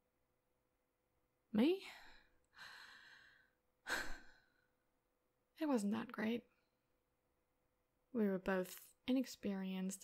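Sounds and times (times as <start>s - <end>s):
woman inhaling: 2.1s - 4.6s
woman sighing: 2.5s - 4.7s.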